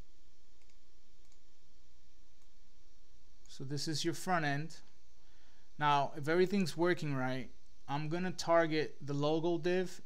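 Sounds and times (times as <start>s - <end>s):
low room hum: 0.0s - 10.0s
computer mouse clicks: 0.6s - 1.5s, 2.4s - 2.6s.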